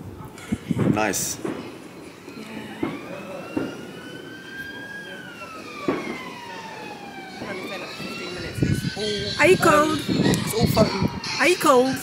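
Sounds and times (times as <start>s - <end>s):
emergency siren wailing: 0.8s - 12.0s.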